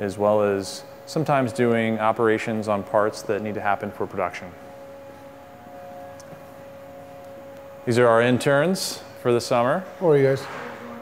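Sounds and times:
shop machinery whine: 0.0 - 11.0.

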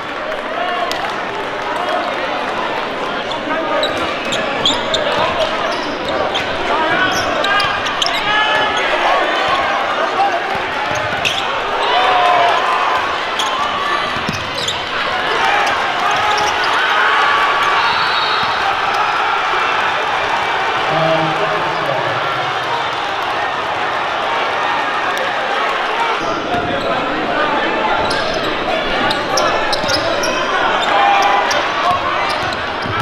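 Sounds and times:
crowd chatter and shouts: 0.0 - 33.0.

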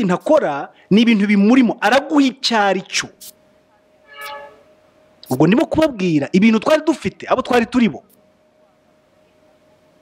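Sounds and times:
faint high hum: 0.0 - 10.0
steady pitched tone: 4.0 - 4.9.

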